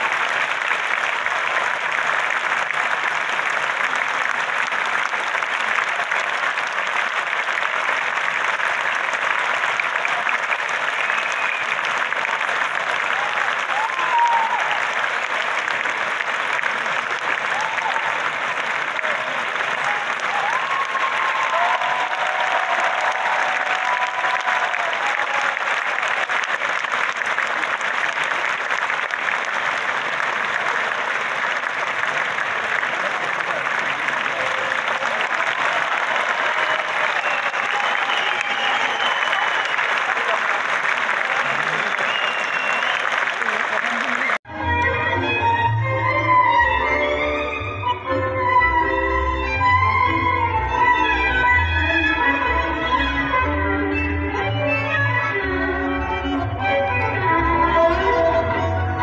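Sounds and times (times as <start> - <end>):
audience applauding: 0.0 - 44.5.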